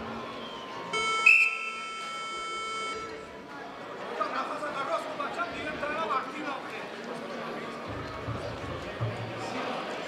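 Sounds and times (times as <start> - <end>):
electronic time buzzer: 1.0 - 3.2.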